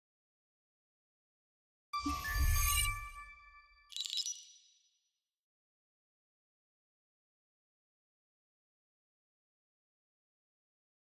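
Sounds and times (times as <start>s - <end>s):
bright high chime: 2.0s - 4.8s.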